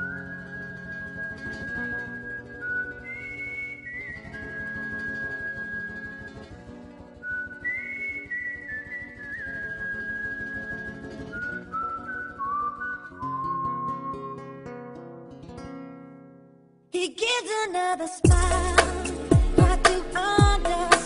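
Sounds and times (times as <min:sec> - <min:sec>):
whistled melody: 0:00.0 - 0:06.5, 0:07.2 - 0:14.7.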